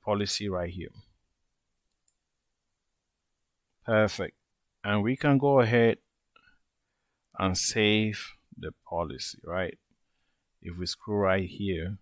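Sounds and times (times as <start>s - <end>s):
computer mouse click: 1.9s - 2.2s.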